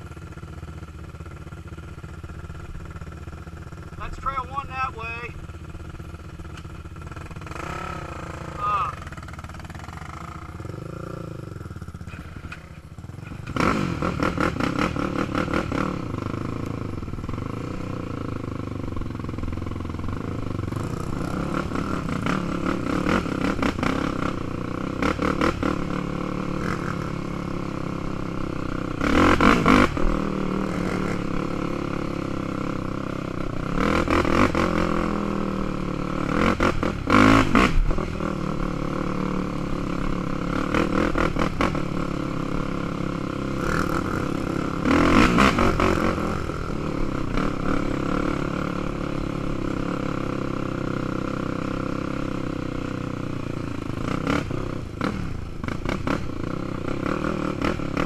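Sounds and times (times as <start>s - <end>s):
quad bike engine revving: 0.0s - 58.0s.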